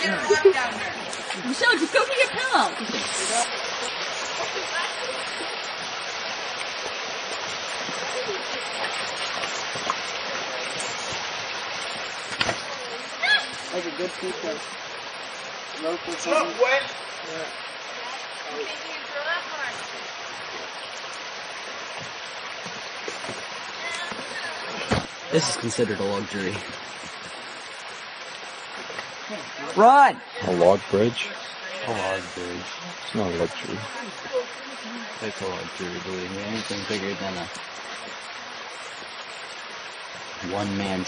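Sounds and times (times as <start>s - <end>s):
creek rushing water: 0.0s - 41.0s
stream flowing: 0.0s - 41.0s.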